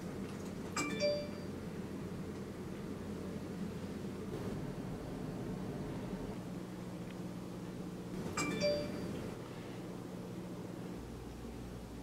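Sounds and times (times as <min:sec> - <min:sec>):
low steady hum: 0:00.0 - 0:12.0
phone alert chime: 0:00.8 - 0:01.5, 0:08.4 - 0:09.2.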